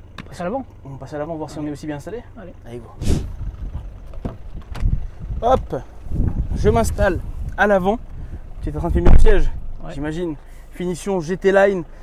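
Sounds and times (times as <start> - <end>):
wind on microphone: 3.0 - 9.8.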